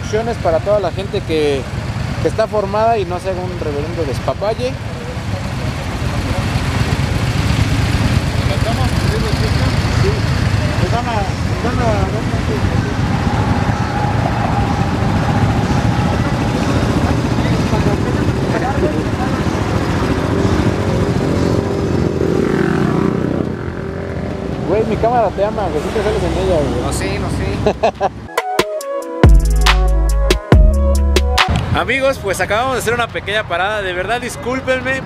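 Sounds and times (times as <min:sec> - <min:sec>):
people talking: 0:00.0 - 0:13.8, 0:14.5 - 0:21.4, 0:24.6 - 0:28.1, 0:31.5 - 0:35.0
motorcycle engines running: 0:00.0 - 0:28.3.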